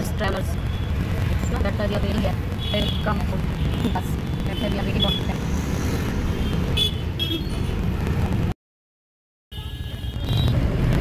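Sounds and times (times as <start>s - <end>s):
road traffic: 0.0s - 8.6s, 9.5s - 11.0s.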